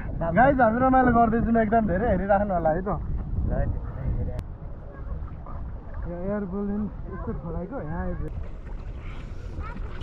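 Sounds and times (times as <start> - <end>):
wind buffeting microphone: 0.0 - 10.0
water sloshing around boat: 1.4 - 10.0.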